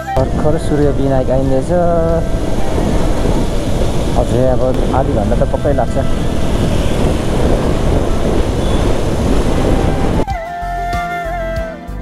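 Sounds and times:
motorcycle road noise: 0.0 - 10.2
wind rushing over microphone: 0.0 - 10.3
background music: 0.0 - 12.0.

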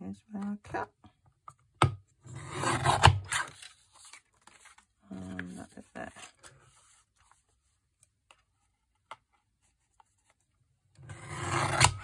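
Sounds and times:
card scraping across paper trimmer: 11.1 - 12.0.

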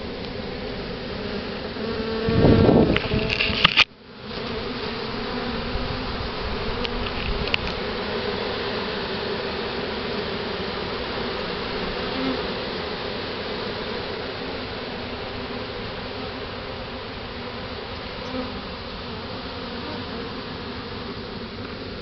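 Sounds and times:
bee swarm buzzing: 0.0 - 22.0.

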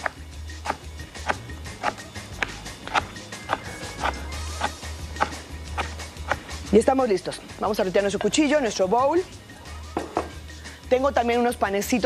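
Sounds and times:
knife chopping on plastic board: 0.0 - 6.4.

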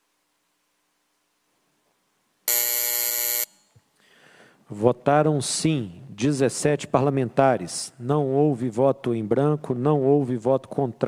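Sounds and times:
electronic buzzer: 2.5 - 3.7
man speaking: 4.7 - 11.0.

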